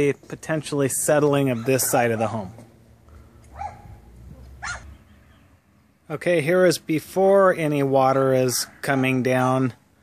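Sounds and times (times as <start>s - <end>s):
faint dog bark: 1.5s - 2.5s, 3.5s - 4.9s.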